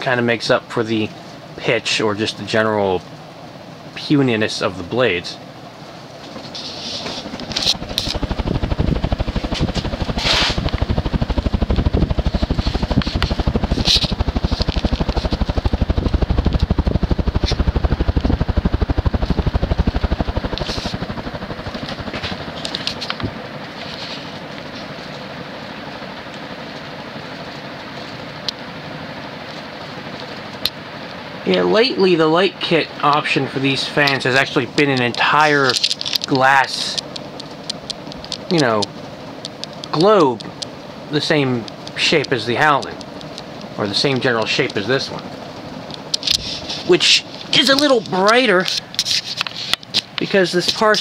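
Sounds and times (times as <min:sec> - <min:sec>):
ceiling fan pulsing whoosh: 0:00.0 - 0:51.0.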